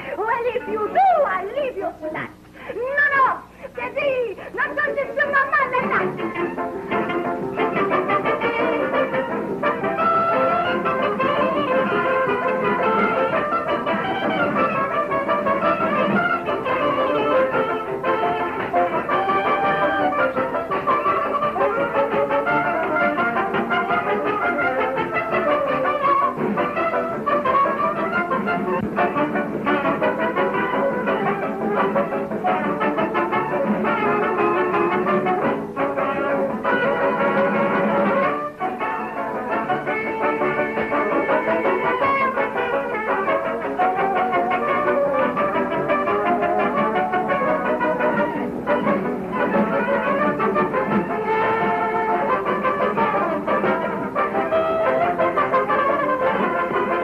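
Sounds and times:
brass dance orchestra music: 0:04.3 - 0:57.0.

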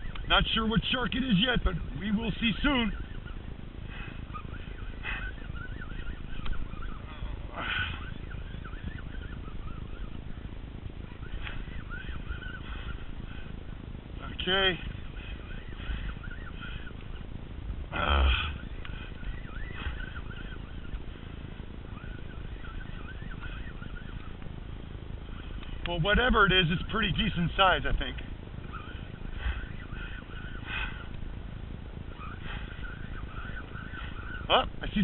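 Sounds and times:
faint rising and falling chirps: 0:00.0 - 0:35.0
rumbling wind: 0:00.0 - 0:35.0.

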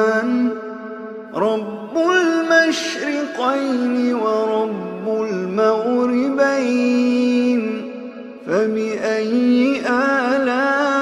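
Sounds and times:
melodic religious recitation: 0:00.0 - 0:11.0.

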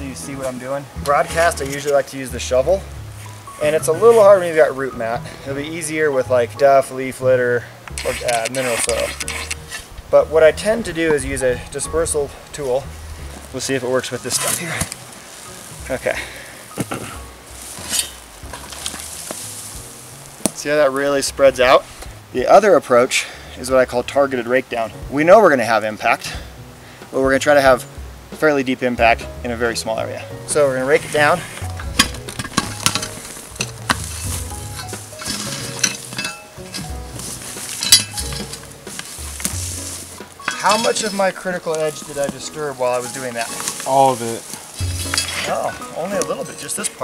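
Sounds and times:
loose dirt scattering: 0:00.0 - 0:22.2, 0:29.5 - 0:47.0
metal blade scraping soil: 0:00.2 - 0:05.2, 0:07.9 - 0:12.8, 0:13.6 - 0:16.1, 0:16.8 - 0:20.8, 0:30.5 - 0:47.0.

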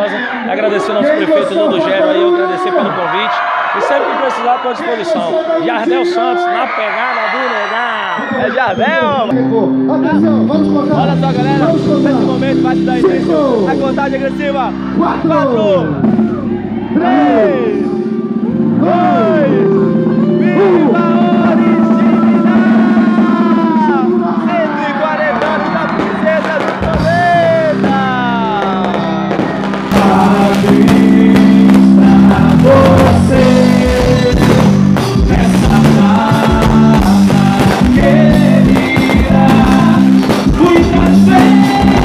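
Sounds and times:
full band playing loudly: 0:08.3 - 0:42.0
held keyboard chord: 0:09.3 - 0:42.0
driving drum beat: 0:11.0 - 0:42.0
sung and shouted vocals: 0:15.7 - 0:42.0.

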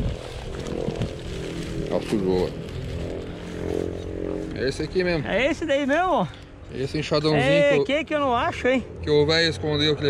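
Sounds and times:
men talking: 0:01.8 - 0:02.7, 0:03.9 - 0:08.0, 0:08.9 - 0:10.0.

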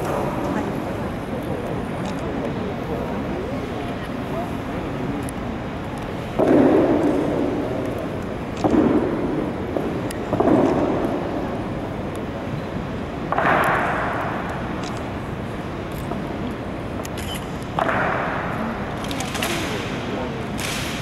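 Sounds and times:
echo in stone hall: 0:06.3 - 0:07.9, 0:13.3 - 0:14.8, 0:17.8 - 0:21.0.

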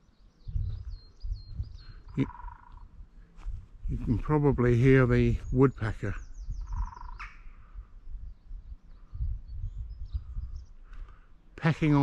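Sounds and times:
faint bird calls: 0:00.0 - 0:04.2, 0:04.9 - 0:12.0
woodpecker drumming on wood: 0:06.7 - 0:07.4.

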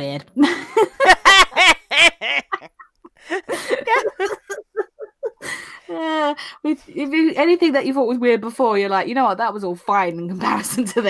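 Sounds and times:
loud laughter: 0:00.7 - 0:05.6.

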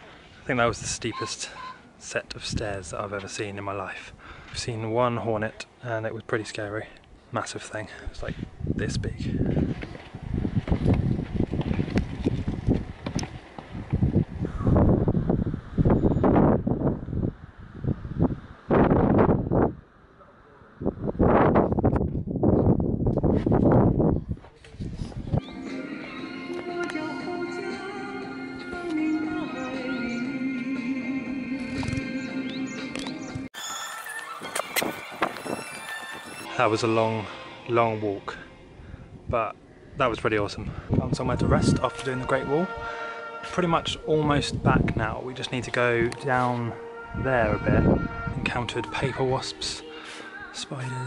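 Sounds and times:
wind gusts buffeting microphone: 0:08.0 - 0:19.9, 0:20.7 - 0:25.4, 0:38.6 - 0:41.9, 0:43.7 - 0:49.0
background music with sustained tones: 0:25.4 - 0:34.4, 0:36.2 - 0:39.1, 0:41.2 - 0:51.0.

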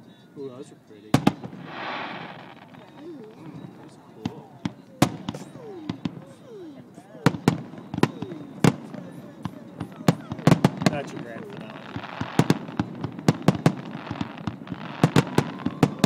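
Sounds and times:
people murmuring: 0:00.0 - 0:16.0
firework shells bursting: 0:01.2 - 0:06.2, 0:10.2 - 0:16.0.

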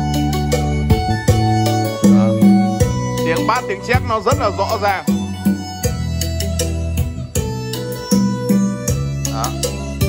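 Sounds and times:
loud music through speakers: 0:00.0 - 0:10.0
strong bass line: 0:00.0 - 0:10.0.

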